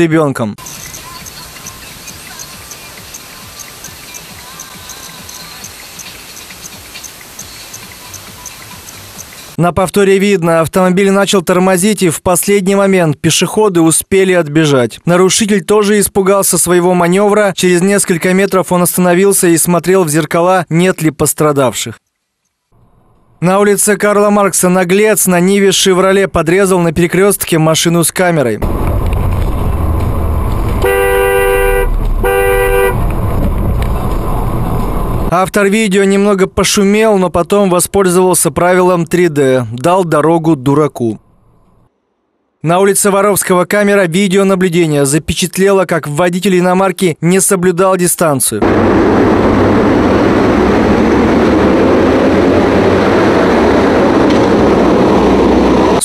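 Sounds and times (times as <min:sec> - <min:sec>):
road traffic noise: 0:00.6 - 0:09.6, 0:28.6 - 0:35.4, 0:48.6 - 0:56.0
low car rumble: 0:22.8 - 0:23.4, 0:28.6 - 0:35.4, 0:48.6 - 0:56.0
car horn honking: 0:30.8 - 0:33.1.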